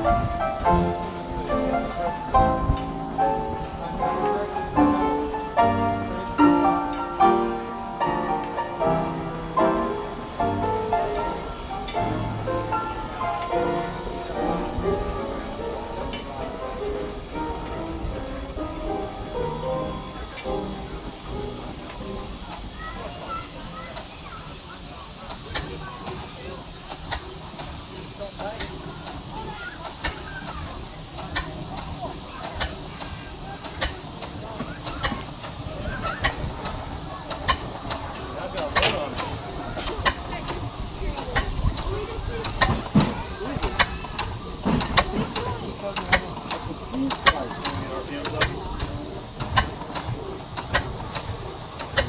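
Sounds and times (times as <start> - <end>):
steam hiss: 0.0 - 52.0
mechanical clicks and knocks: 36.2 - 52.0.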